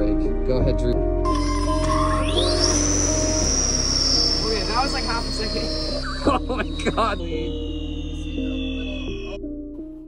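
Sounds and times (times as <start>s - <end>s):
electric motor high whine: 1.3s - 9.4s.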